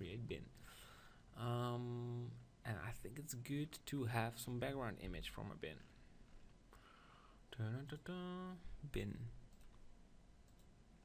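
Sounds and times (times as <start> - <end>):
faint computer mouse clicks: 10.4 - 10.7.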